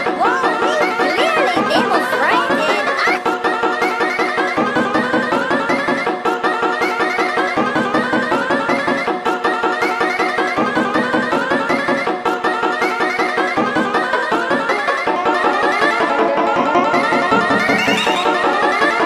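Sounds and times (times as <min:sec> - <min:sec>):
remix music of cartoon clips: 0:00.0 - 0:19.0.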